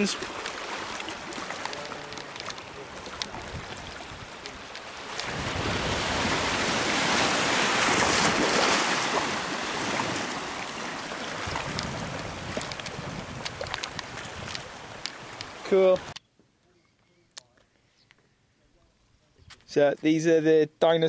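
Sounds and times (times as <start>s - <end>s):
wave washing over rocks: 0.0s - 16.1s.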